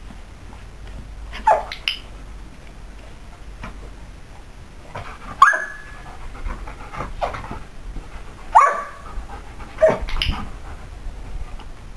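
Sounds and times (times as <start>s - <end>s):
dog yelping barks: 1.4s - 1.8s, 5.4s - 6.0s, 8.5s - 9.0s, 9.8s - 10.1s.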